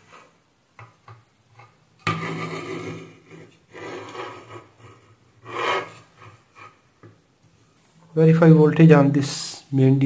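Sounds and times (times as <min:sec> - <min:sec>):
scratchy rubbing on microphone: 0:02.2 - 0:06.8.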